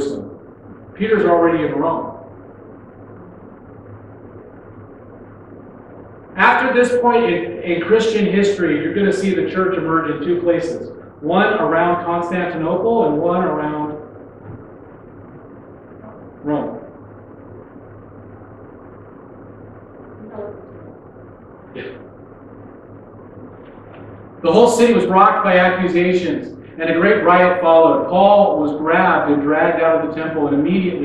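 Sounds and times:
faint hum: 0.0 - 31.0
steady low hiss: 0.0 - 31.0.

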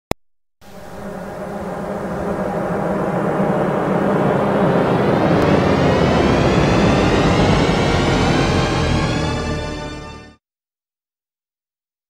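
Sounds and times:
whoosh with rising pitch sweep: 0.6 - 10.4.

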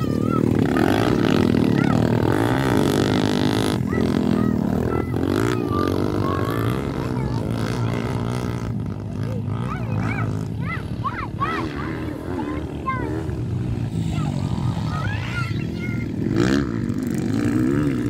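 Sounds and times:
dirt bike engines revving: 0.0 - 18.0.

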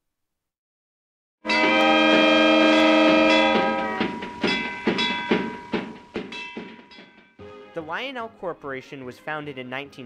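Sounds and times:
train whistle chord: 1.4 - 5.1.

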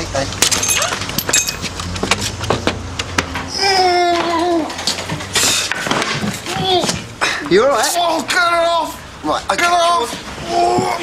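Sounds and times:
muffled moan of gagged man: 3.5 - 4.7.

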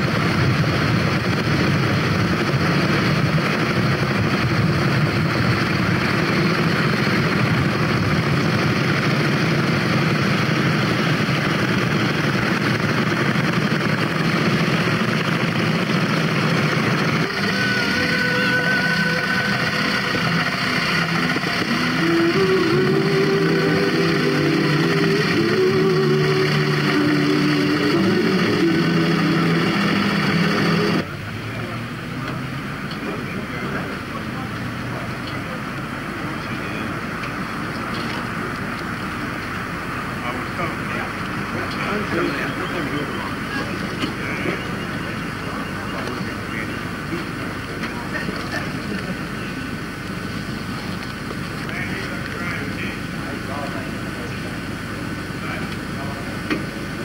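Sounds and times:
motorcycle engines running: 0.0 - 57.0
vehicle engine pulling along road: 0.0 - 57.0.

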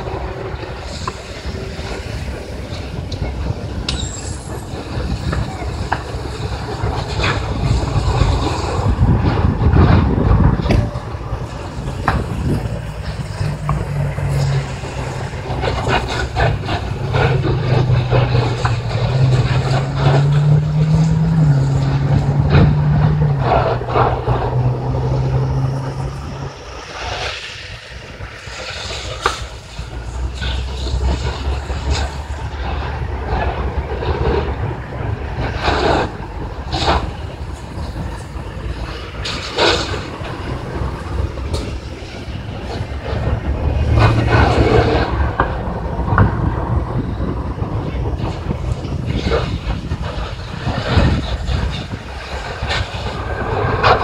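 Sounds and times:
diesel truck engine running: 0.0 - 54.0.

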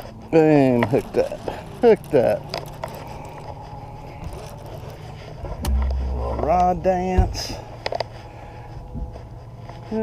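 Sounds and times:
fishing rod and reel handling: 0.0 - 8.1
sudden low rumble: 5.6 - 7.7.

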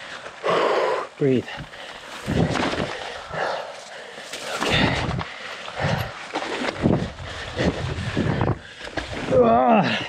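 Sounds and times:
person breathing hard: 0.0 - 10.0
tyre and wind noise: 1.3 - 10.0.

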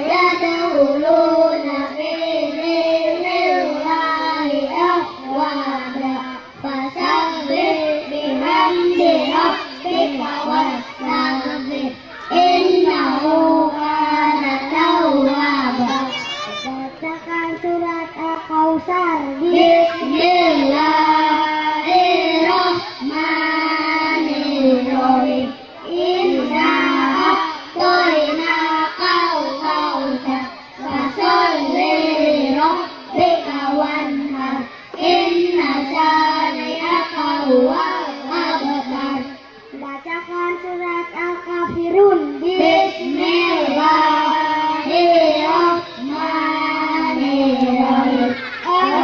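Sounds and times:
boys chanting into microphones: 0.0 - 49.0.

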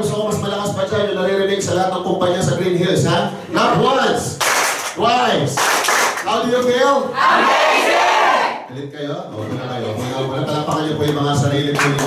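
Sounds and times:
group of people shouting: 7.2 - 8.6.

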